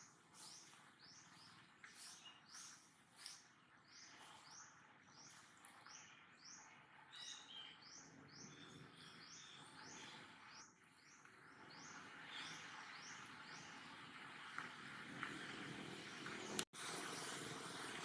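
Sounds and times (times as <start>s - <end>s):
bird chirping: 0.0s - 14.0s.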